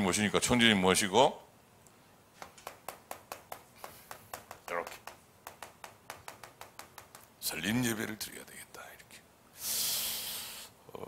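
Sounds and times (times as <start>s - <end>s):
chalk tapping on a chalkboard: 2.4s - 7.4s.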